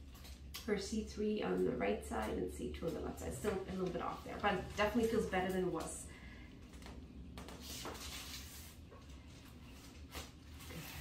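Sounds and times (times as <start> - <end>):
steady low hum: 0.0 - 11.0
soft rustling of clothing: 1.5 - 6.0.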